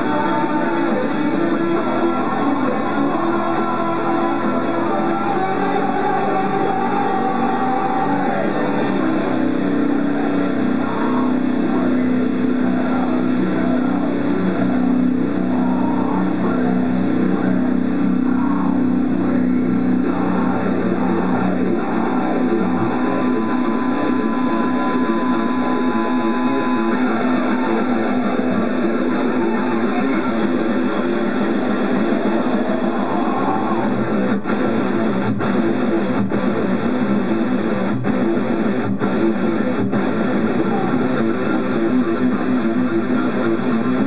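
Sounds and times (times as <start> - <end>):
electric guitar ringing notes: 0.0 - 44.0.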